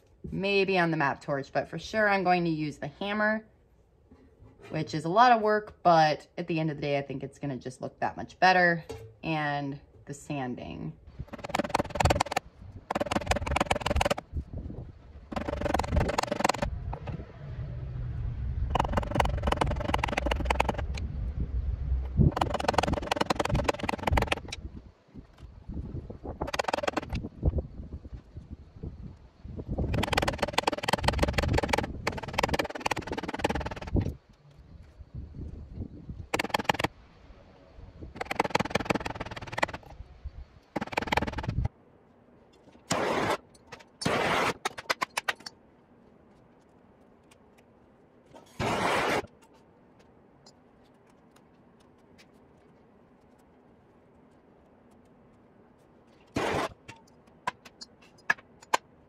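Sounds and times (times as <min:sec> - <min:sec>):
wind rumble on microphone: 0:11.1 - 0:36.4.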